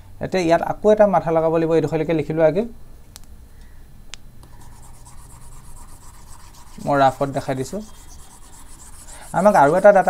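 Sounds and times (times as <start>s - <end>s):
stylus rubbing on tablet screen: 4.5s - 10.0s.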